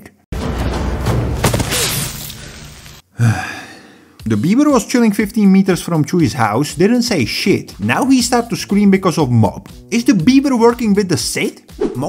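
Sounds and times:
man sighing: 3.1s - 4.2s.

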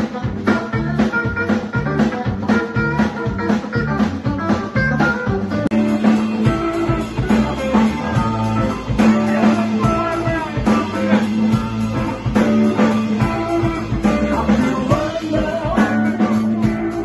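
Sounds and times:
drums: 0.0s - 17.0s
electric bass: 0.0s - 17.0s
electric guitar lines: 0.0s - 17.0s.

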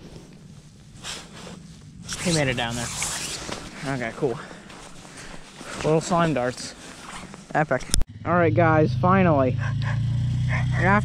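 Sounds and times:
snow clothing rustling: 0.0s - 8.0s
boots scuffing on snowy ice: 3.4s - 7.4s.

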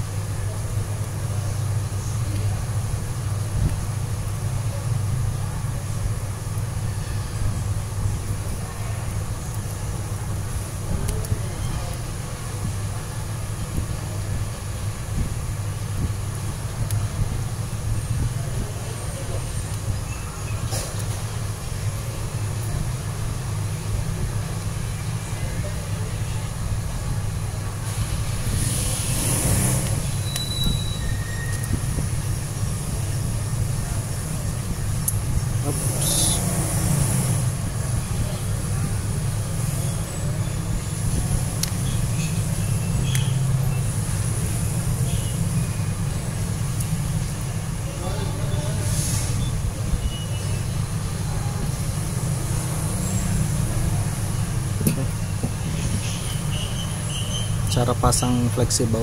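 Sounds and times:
brief hissy rushes: 48.8s - 49.4s.

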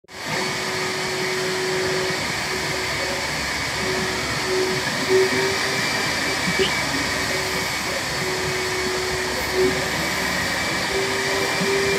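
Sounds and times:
hum: 3.8s - 7.6s.

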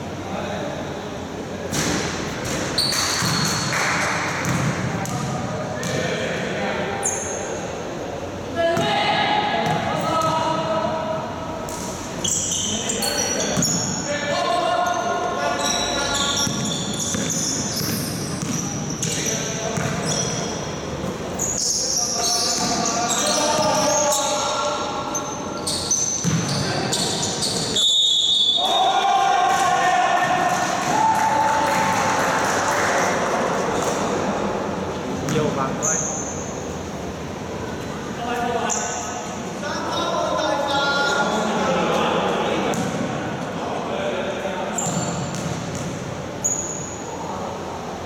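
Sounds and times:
basketball bouncing on court: 1.9s - 3.7s, 4.4s - 6.0s, 16.3s - 21.2s, 26.2s - 26.7s, 44.8s - 46.0s
players shouting: 28.5s - 33.0s.

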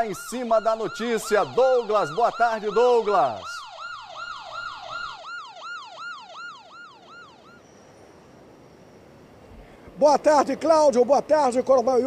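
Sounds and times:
electronic siren yelping: 0.0s - 7.8s.

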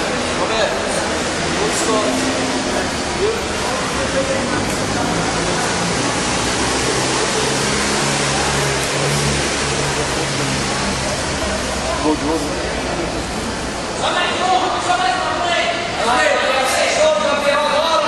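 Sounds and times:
steady rushing noise: 0.0s - 17.3s
faint indistinct voices: 0.0s - 18.0s.

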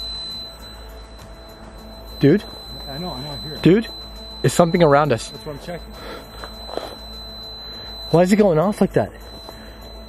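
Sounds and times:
high-pitched meter tone: 0.0s - 10.0s.

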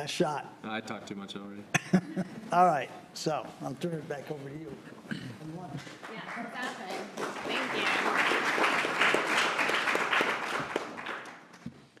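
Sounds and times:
audience applauding: 5.9s - 11.7s.

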